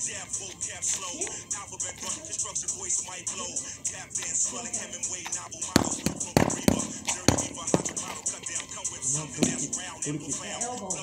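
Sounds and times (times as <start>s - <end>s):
hip hop music with rap vocals: 0.0s - 11.0s
boxing gloves smacking mitts: 5.7s - 8.3s.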